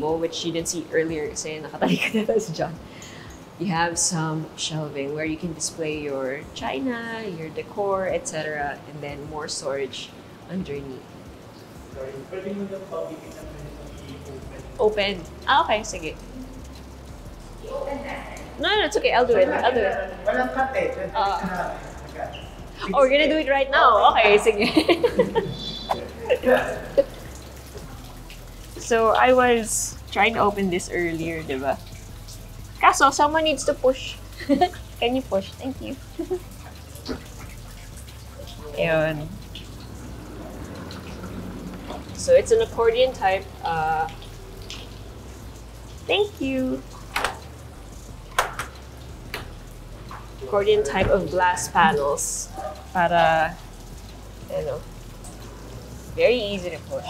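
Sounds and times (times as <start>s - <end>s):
water trickling down stone wall: 0.0s - 57.0s.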